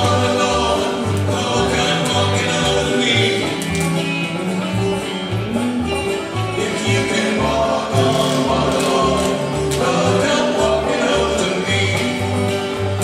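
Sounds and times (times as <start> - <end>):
acoustic guitar: 0.0 - 13.0
banjo: 0.0 - 13.0
electric guitar: 0.0 - 13.0
upright bass walking line: 0.0 - 13.0.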